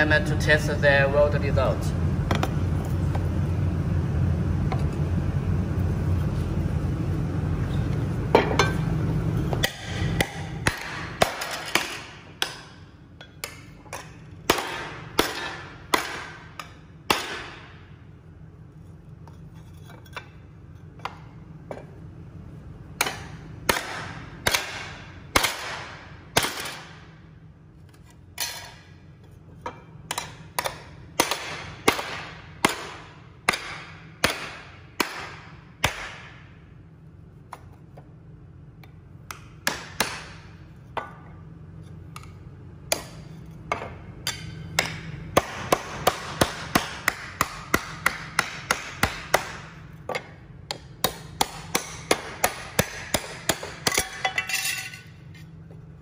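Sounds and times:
hammer striking metal plate: 9.6s - 17.7s.

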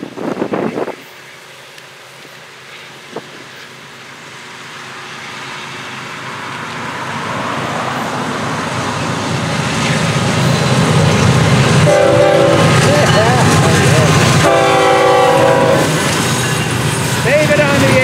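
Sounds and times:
diesel locomotives passing: 0.0s - 18.0s
locomotive horn blasts: 11.8s - 12.9s, 14.4s - 16.0s.

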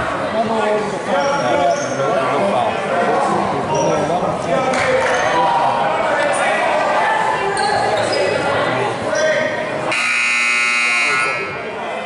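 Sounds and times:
voices in a gym: 0.0s - 12.0s
scoreboard horn buzzing: 9.9s - 11.6s.

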